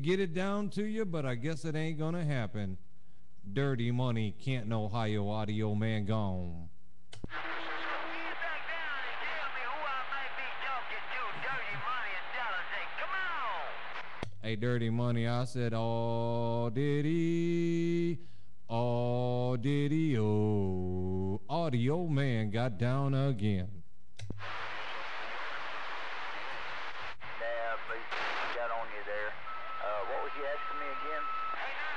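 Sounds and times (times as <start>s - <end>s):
radio static hiss: 7.3s - 14.2s, 24.4s - 31.9s
radio transmitter click: 24.2s - 29.4s.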